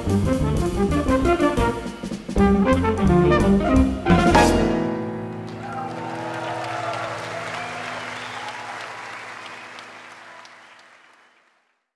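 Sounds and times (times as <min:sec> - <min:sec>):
jazz band closing chord: 0:00.0 - 0:05.9
audience applauding: 0:05.3 - 0:11.9.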